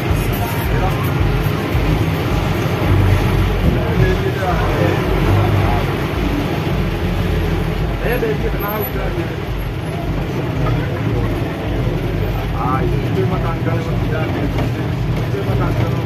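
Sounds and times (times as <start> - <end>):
people's voices: 0.0 - 16.0
vehicle engine low rumble: 0.0 - 16.0.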